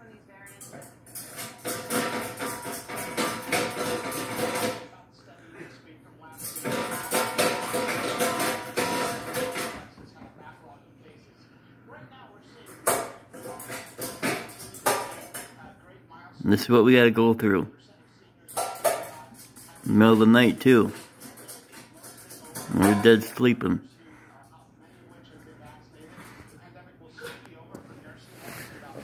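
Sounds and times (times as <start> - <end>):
metal bowl clattering: 0.5 - 4.9, 6.4 - 10.0, 12.7 - 15.6, 18.5 - 23.5.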